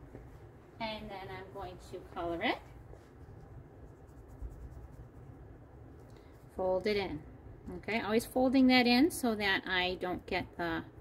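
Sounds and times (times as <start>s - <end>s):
marker scratching on clay: 2.8s - 7.0s.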